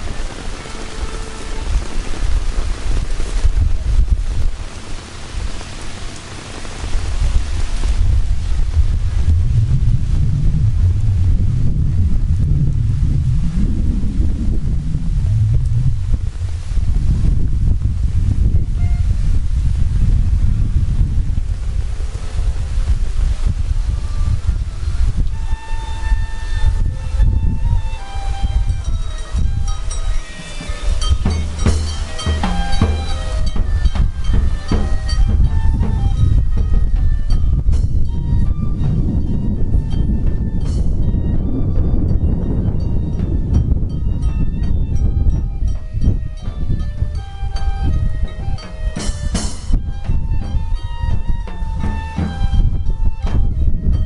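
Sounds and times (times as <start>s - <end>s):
rain hissing on pavement: 0.0s - 41.0s, 46.8s - 53.3s
heavy rain on umbrella: 0.0s - 42.1s, 46.6s - 53.8s
faint held musical notes: 23.8s - 54.0s.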